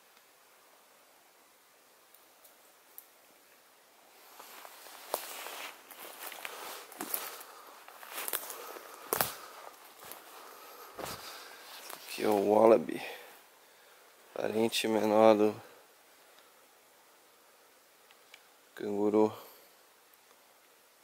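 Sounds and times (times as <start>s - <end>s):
footsteps through leaf litter: 4.3s - 12.5s
twigs snapping: 6.0s - 10.2s.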